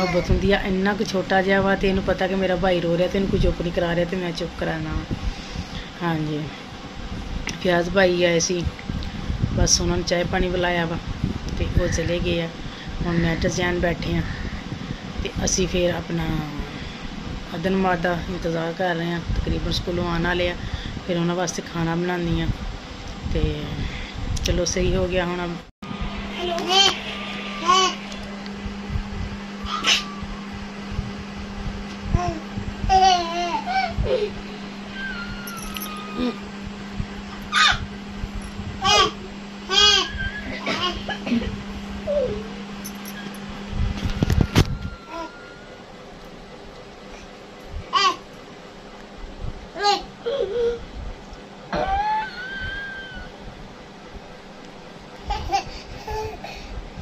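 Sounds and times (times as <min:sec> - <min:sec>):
child whining cry: 0:00.0 - 0:00.4, 0:38.8 - 0:41.1, 0:45.0 - 0:45.6, 0:49.8 - 0:50.9, 0:51.7 - 0:53.4
low electrical hum: 0:00.0 - 0:57.0
short rising squeal: 0:26.1 - 0:28.3, 0:29.6 - 0:30.4, 0:34.9 - 0:36.4, 0:44.4 - 0:45.8.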